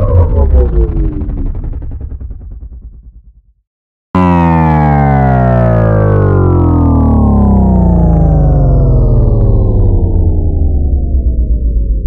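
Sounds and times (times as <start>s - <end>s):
synthesized tone sliding down: 0.0s - 1.9s, 4.2s - 12.0s
deep bass rumble: 0.0s - 3.6s, 4.2s - 12.0s.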